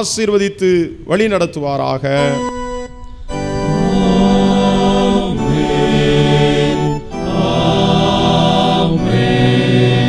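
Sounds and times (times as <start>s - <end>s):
electronic keyboard organ sound: 2.0s - 10.0s
men chanting in a group: 3.6s - 10.0s.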